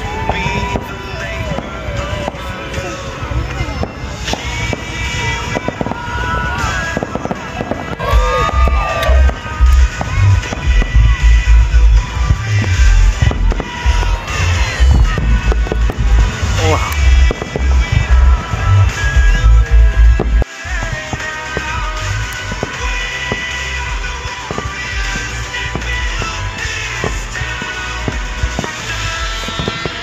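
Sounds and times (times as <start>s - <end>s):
fireworks cracks and bangs: 0.0s - 30.0s
firework whistles: 3.8s - 11.4s, 12.0s - 19.4s, 20.4s - 30.0s
heavy low thumps: 7.0s - 21.1s.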